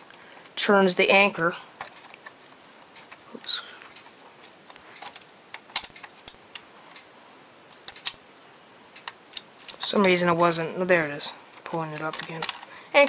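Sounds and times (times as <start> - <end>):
plastic bricks clicking: 5.0 - 6.6, 11.6 - 13.0.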